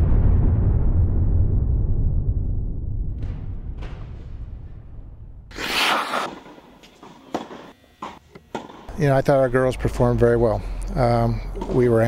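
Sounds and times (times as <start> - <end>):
tennis balls struck by rackets: 6.2 - 8.9.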